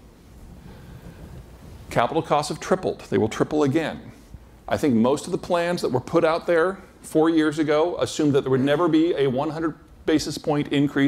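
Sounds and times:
man speaking: 1.9s - 11.0s.

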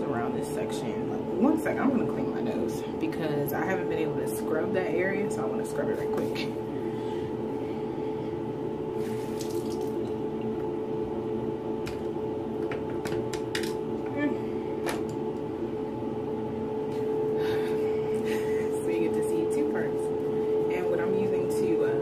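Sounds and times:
background hum: 0.0s - 22.0s.

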